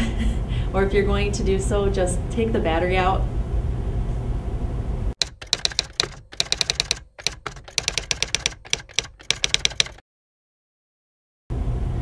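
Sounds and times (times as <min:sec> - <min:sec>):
fast typing on keyboard: 0:05.2 - 0:10.0.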